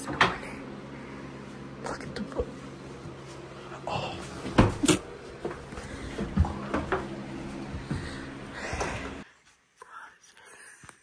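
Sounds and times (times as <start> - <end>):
low steady hum: 0.0 - 10.8.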